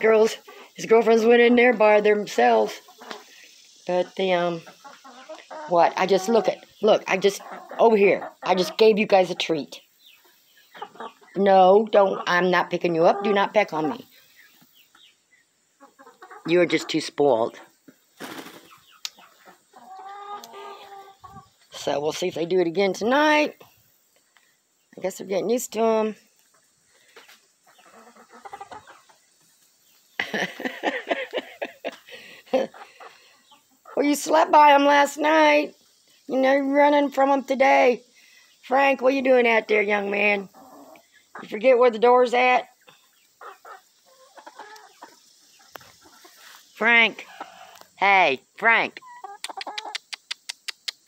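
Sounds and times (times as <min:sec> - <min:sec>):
drawn-out hen call: 0:00.0 - 0:09.6, 0:10.2 - 0:14.2, 0:15.8 - 0:17.1, 0:19.1 - 0:21.6, 0:27.6 - 0:29.2, 0:43.4 - 0:48.0, 0:48.8 - 0:50.2
hens clucking: 0:00.0 - 0:37.5, 0:38.5 - 0:51.0.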